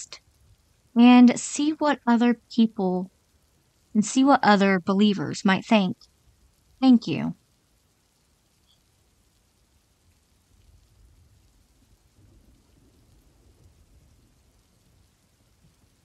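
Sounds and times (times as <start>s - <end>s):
distant thunder rumble: 11.0s - 15.0s.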